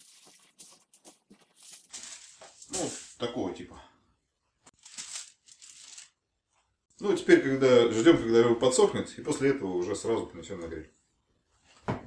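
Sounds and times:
aluminium foil crumpling: 0.0s - 3.1s, 4.8s - 6.2s.

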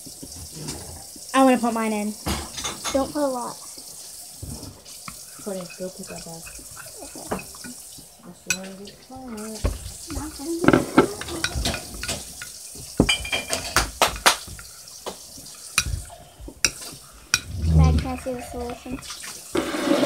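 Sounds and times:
spoon clinking against glass bowl: 11.2s - 14.4s.

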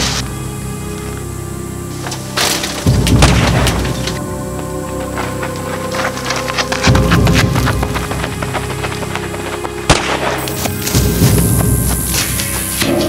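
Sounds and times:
music with pulsing bass: 0.0s - 13.0s.

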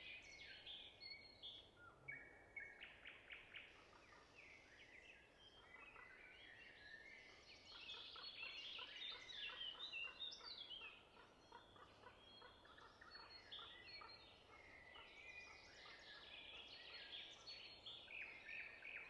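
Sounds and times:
birds chirping and twittering: 0.0s - 19.0s.

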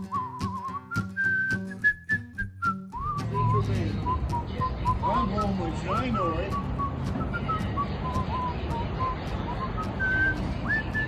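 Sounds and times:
person whistling a tune: 0.0s - 11.0s
strummed acoustic guitar song: 0.0s - 11.0s.

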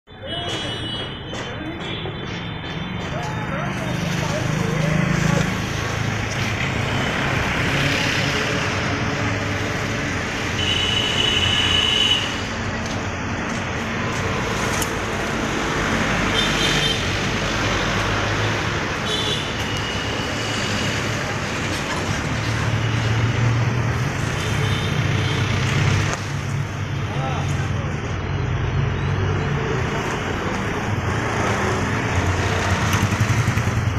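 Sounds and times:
street traffic rumble: 0.0s - 33.9s.

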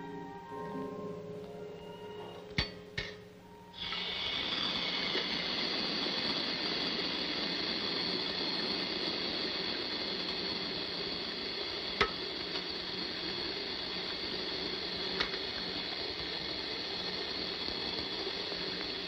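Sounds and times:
water running from sink tap: 3.8s - 19.0s.

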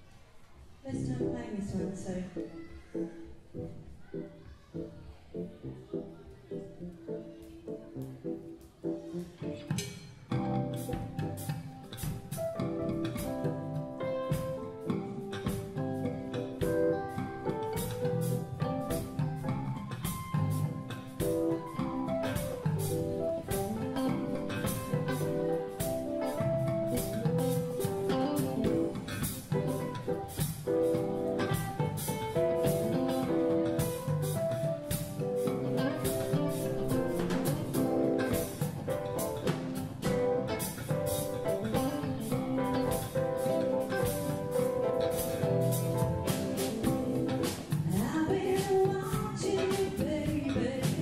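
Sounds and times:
keyboard: 0.8s - 51.0s
drum kit beat: 7.0s - 51.0s
bass guitar: 7.9s - 51.0s
electric guitar: 7.9s - 51.0s.

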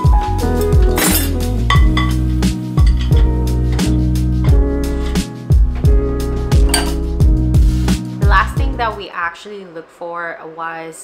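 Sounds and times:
background music with beat: 0.0s - 9.0s
ceramic dishes clinking: 1.0s - 3.9s, 6.6s - 7.0s.

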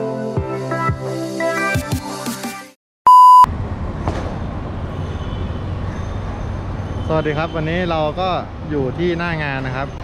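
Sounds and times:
background music: 0.0s - 2.8s
electronic beep: 3.1s - 3.5s
city street traffic: 3.4s - 10.0s.

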